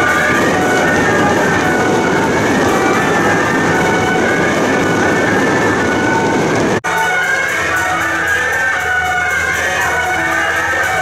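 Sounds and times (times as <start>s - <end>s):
clattering percussion: 0.0s - 11.0s
horns wailing: 0.0s - 11.0s.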